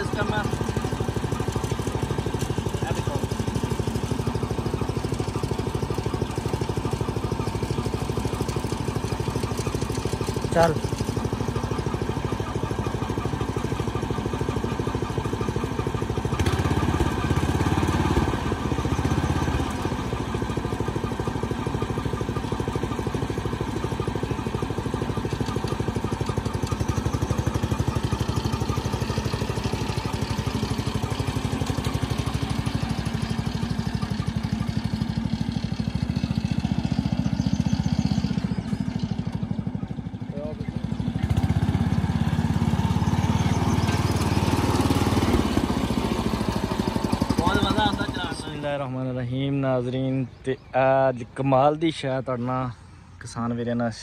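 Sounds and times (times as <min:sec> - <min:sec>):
small petrol engine running: 0:00.0 - 0:50.7.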